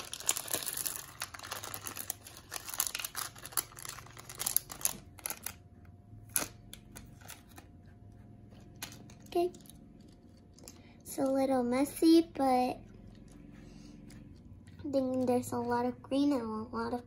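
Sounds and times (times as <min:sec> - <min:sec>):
plastic bag crinkling: 0:00.0 - 0:05.7.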